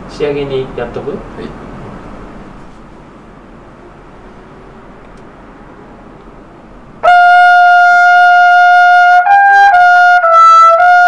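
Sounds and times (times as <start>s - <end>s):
trumpet high note: 7.0s - 11.0s.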